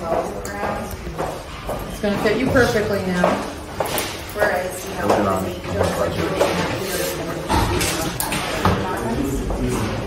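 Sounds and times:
indistinct talk: 0:00.0 - 0:10.0.

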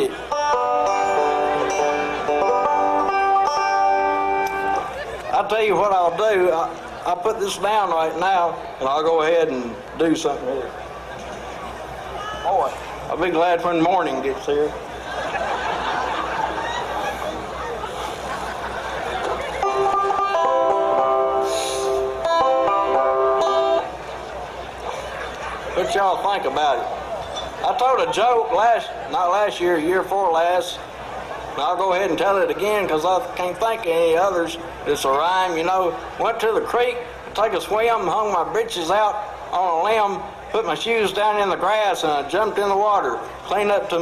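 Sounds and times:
banjo strings ringing: 0:00.0 - 0:04.9, 0:19.2 - 0:24.1
murmur of voices: 0:00.0 - 0:44.0.

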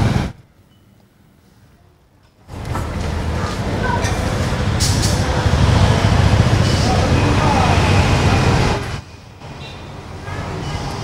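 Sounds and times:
road traffic noise: 0:00.0 - 0:11.0
low engine rumble: 0:02.5 - 0:09.4.

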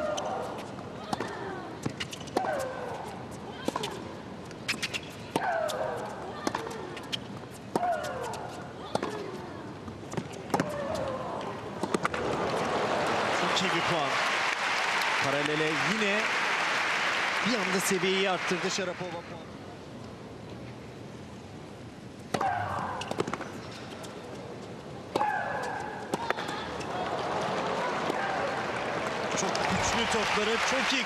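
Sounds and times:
racket striking tennis ball: 0:07.7 - 0:09.4
crowd applause: 0:12.2 - 0:19.2, 0:26.9 - 0:31.0.

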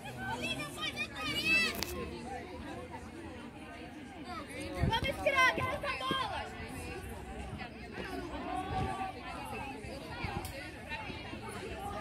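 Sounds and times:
faint chatter of voices: 0:00.0 - 0:12.0.

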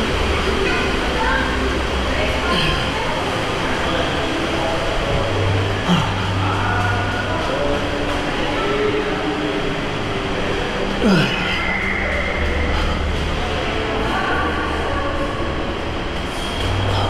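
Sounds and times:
echoing water park din: 0:00.0 - 0:17.0
faint distant voices: 0:00.0 - 0:17.0.

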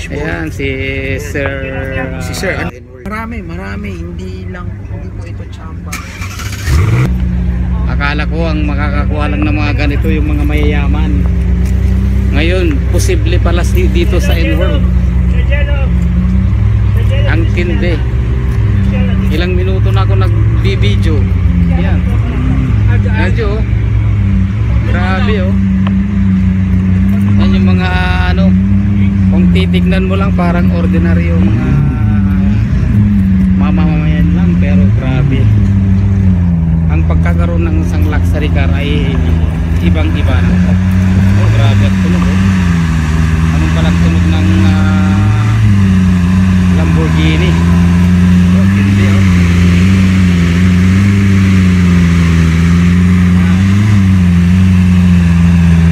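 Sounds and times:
car engine starting and idling: 0:00.0 - 0:55.9.

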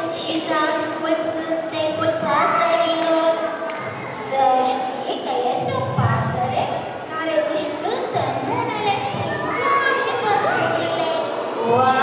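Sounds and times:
children calling out together: 0:08.4 - 0:11.6.

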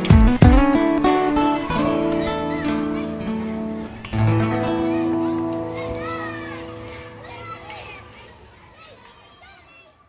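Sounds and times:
acoustic guitar chord ringing: 0:00.0 - 0:07.7
children chattering and calling: 0:00.7 - 0:10.0.

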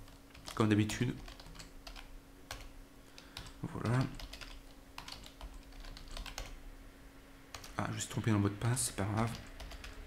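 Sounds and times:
keyboard keys clicking: 0:00.1 - 0:06.6, 0:09.1 - 0:10.0.

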